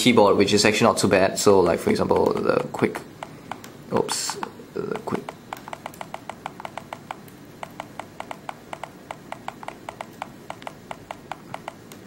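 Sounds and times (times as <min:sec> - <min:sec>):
touchscreen keyboard clicks: 0:01.9 - 0:12.0.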